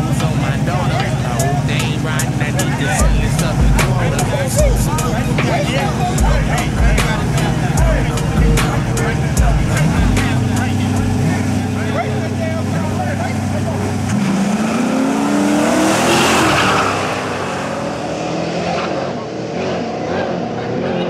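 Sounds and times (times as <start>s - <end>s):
race cars accelerating: 0.0s - 21.0s
race cars idling: 0.0s - 21.0s.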